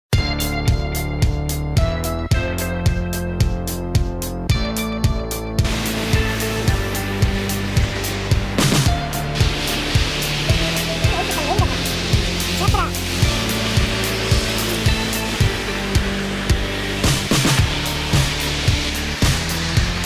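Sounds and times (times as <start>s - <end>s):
music with beat and bass: 0.1s - 20.0s
steady rushing hiss: 5.3s - 20.0s.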